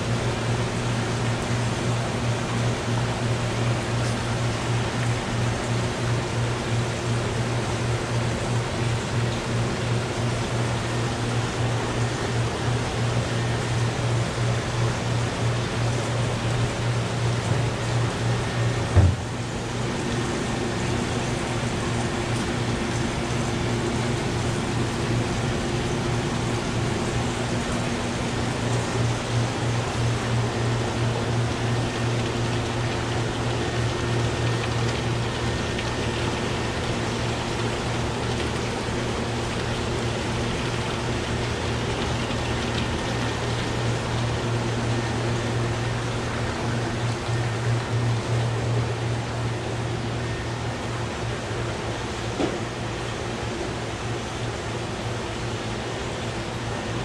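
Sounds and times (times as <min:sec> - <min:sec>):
aquarium filtration humming: 0:00.0 - 0:57.0
short thump: 0:19.0 - 0:19.3.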